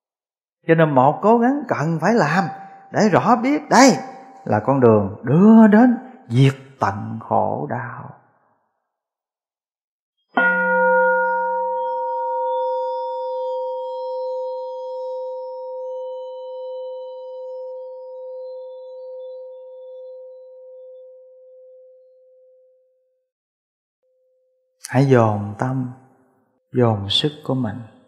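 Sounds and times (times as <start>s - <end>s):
bowl bell ringing tone: 10.4s - 21.9s.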